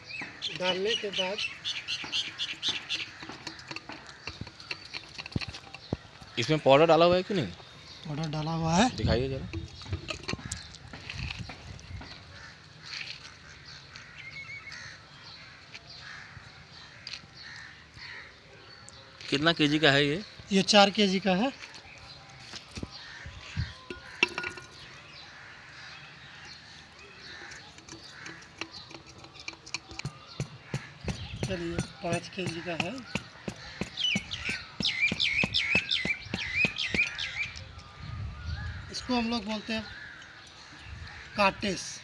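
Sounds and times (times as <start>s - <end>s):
bird singing repeated notes: 0.0s - 12.4s, 19.7s - 42.0s
crows cawing: 0.2s - 6.6s, 12.2s - 18.4s, 22.8s - 29.1s, 30.0s - 37.5s, 39.1s - 41.6s.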